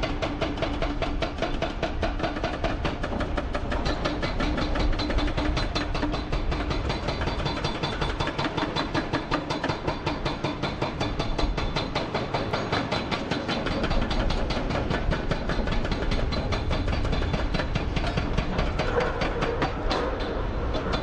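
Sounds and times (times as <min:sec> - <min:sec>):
hydraulic rock breaker hammering: 0:00.0 - 0:21.0.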